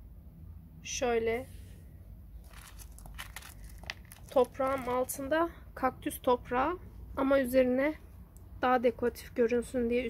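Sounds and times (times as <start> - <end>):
crunching clicks of stones: 2.4 - 5.0.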